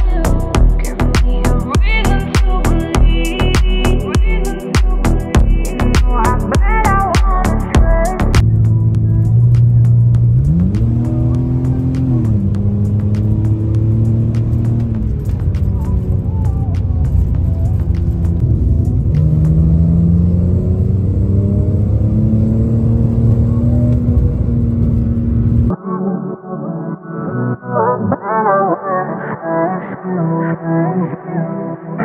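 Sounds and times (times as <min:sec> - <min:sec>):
background music: 0:00.0 - 0:32.0
car engine accelerating: 0:05.1 - 0:25.7.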